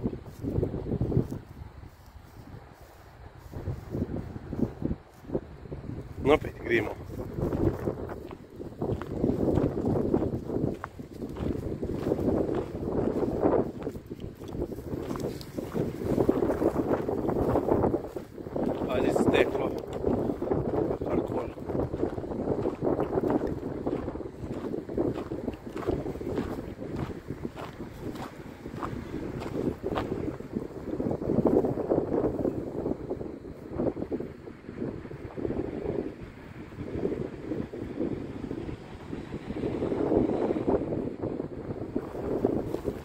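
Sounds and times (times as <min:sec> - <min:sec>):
wind buffeting microphone: 0:00.0 - 0:43.0
dry grass crackling underfoot: 0:00.1 - 0:31.8.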